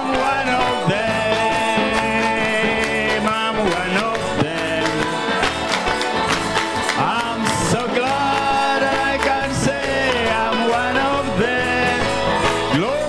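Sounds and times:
congregation clapping: 0:00.0 - 0:13.0
gospel band with voices: 0:00.0 - 0:13.0.

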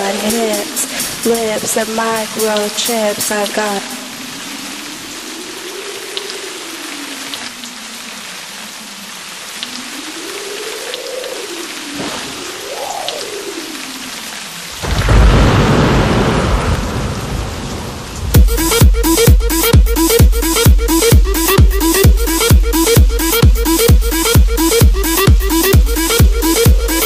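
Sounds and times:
rain hiss: 0:00.0 - 0:27.0
deep thunder rumble: 0:14.7 - 0:19.4.

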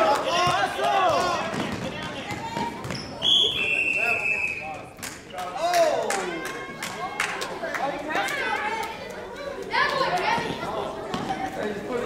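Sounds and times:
voices calling out in gym: 0:00.0 - 0:12.0.

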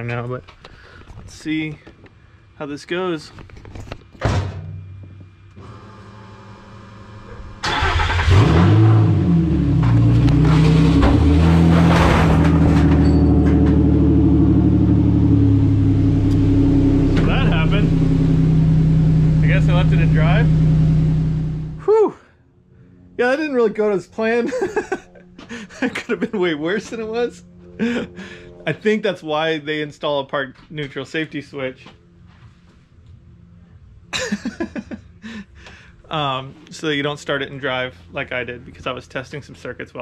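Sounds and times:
engine running: 0:04.4 - 0:22.0, 0:22.6 - 0:30.1.

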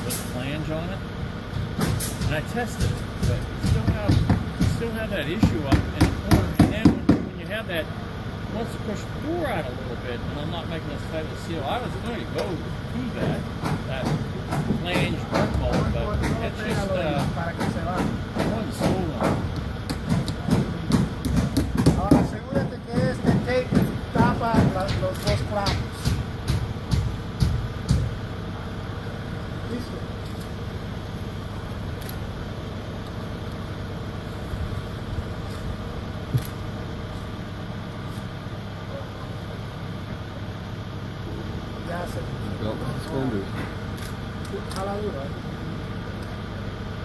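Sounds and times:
people talking: 0:00.0 - 0:01.1, 0:02.2 - 0:19.5, 0:20.1 - 0:26.2, 0:29.6 - 0:30.2, 0:41.8 - 0:43.8, 0:44.4 - 0:45.9
engine idling: 0:00.0 - 0:47.0
sharp taps: 0:01.6 - 0:07.3, 0:13.2 - 0:28.2.

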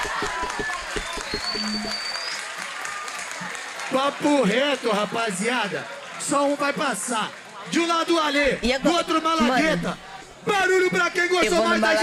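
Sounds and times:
rapid beat or clapping: 0:00.0 - 0:03.9
crowd cheering and shouting: 0:00.0 - 0:12.0.

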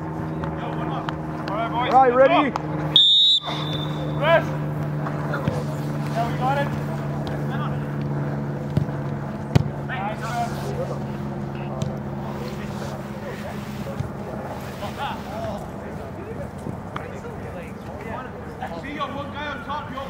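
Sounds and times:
low mechanical hum: 0:00.0 - 0:20.0
distant players shouting: 0:00.3 - 0:10.3.

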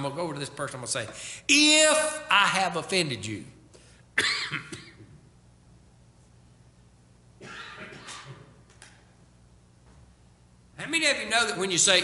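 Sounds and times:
man coughing: 0:04.2 - 0:05.2, 0:07.4 - 0:08.6.

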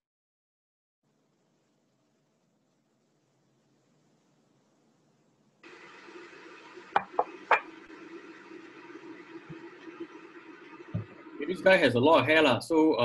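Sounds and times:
background hiss with low hum: 0:01.1 - 0:13.0.

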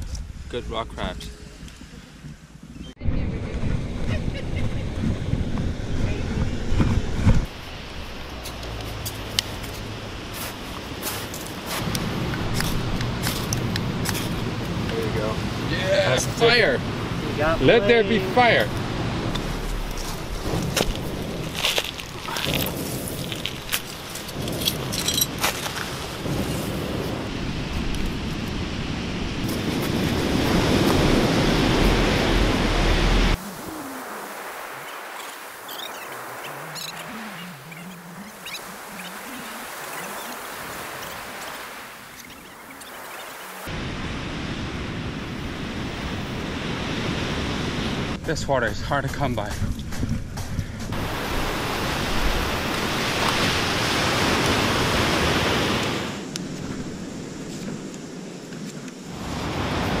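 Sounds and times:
ocean surf: 0:00.0 - 0:49.6, 0:50.4 - 1:00.0
wind rumble: 0:00.0 - 1:00.0
campfire crackling: 0:07.4 - 1:00.0.

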